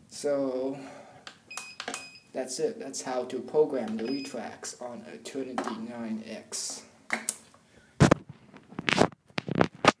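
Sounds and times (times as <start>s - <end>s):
camera handling scratching rubs: 8.0s - 10.0s.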